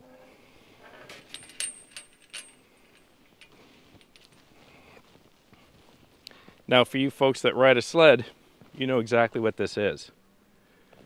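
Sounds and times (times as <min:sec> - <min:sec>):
metal gate chain rattling: 0:01.0 - 0:04.4
faint ticks: 0:06.2 - 0:06.6.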